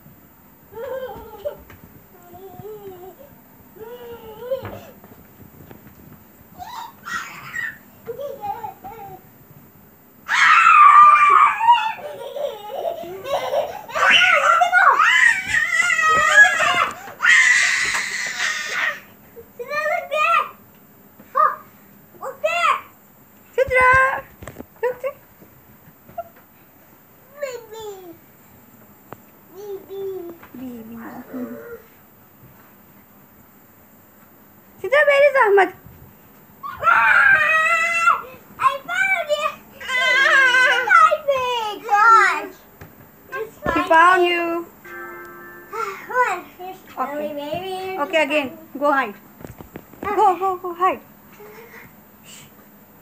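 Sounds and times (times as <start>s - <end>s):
child laughing: 6.6s - 9.2s, 11.0s - 19.0s.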